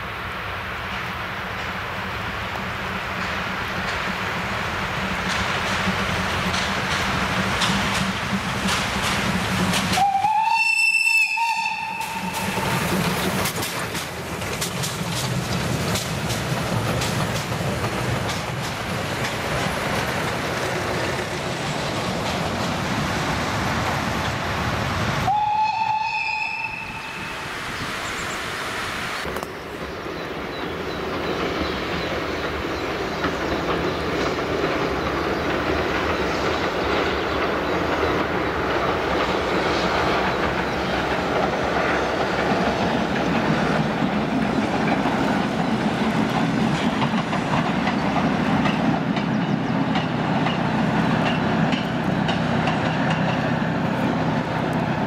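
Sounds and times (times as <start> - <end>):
train noise: 0.0 - 55.0
train clickety-clack on bridge: 0.6 - 28.3, 29.2 - 55.0
locomotive whistle: 9.9 - 12.9, 25.2 - 27.6.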